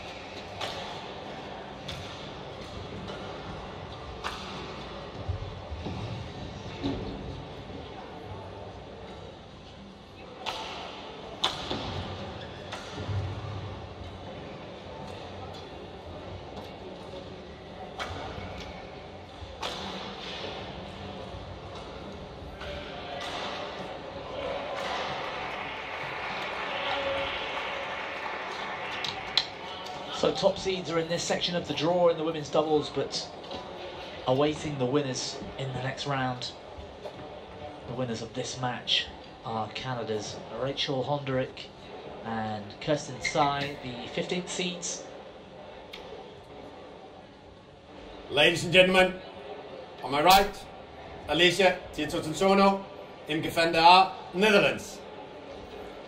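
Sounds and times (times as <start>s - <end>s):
racket hitting shuttlecock: 4.2s - 4.7s, 10.4s - 12.0s, 19.6s - 20.3s
people talking: 48.3s - 49.2s, 50.0s - 50.6s, 51.3s - 55.0s.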